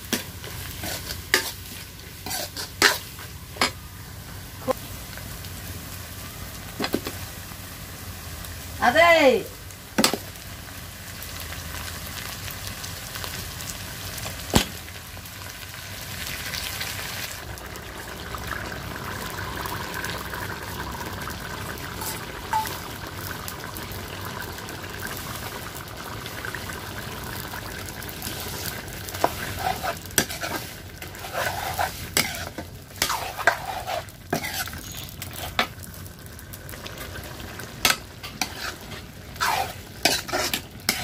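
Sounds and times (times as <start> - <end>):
food sizzling in a pan: 0.0 - 41.0.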